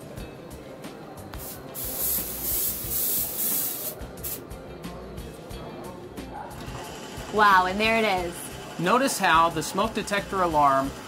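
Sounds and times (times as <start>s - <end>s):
aerosol can spraying: 1.3s - 4.4s.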